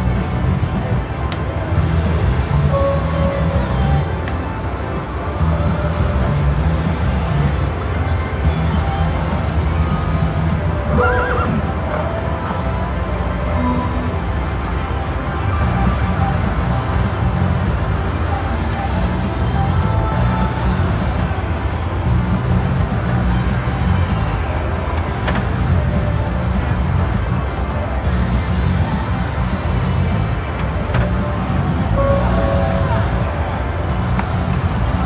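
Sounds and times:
slot machine game music: 0.0 - 4.2, 5.4 - 21.3, 25.4 - 35.0
casino background din: 0.0 - 35.0
horse whinny sound effect: 10.9 - 12.0.

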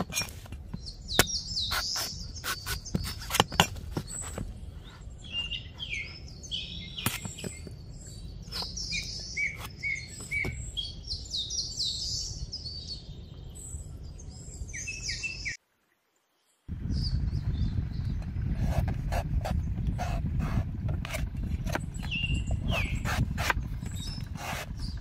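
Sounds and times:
small birds chirping: 0.0 - 15.6, 16.2 - 25.0
low rumble: 16.7 - 25.0.

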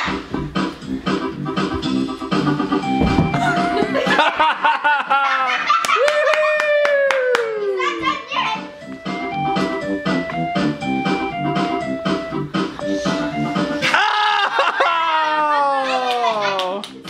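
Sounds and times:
organ-like background music: 0.4 - 5.1, 8.4 - 15.0.

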